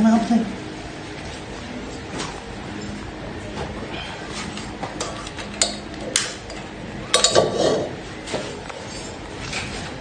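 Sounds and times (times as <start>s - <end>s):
metal cookware clanking: 5.0s - 8.0s.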